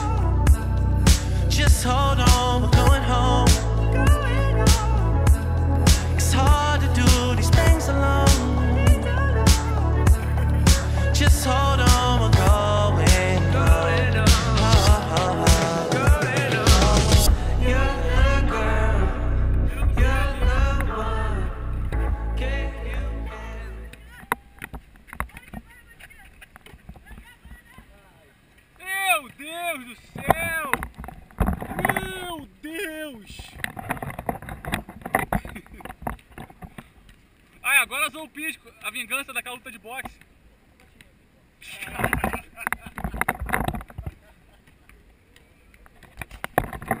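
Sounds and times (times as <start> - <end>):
background music: 0.0 - 24.0
man talking: 28.8 - 30.8, 31.7 - 33.6, 37.6 - 40.2.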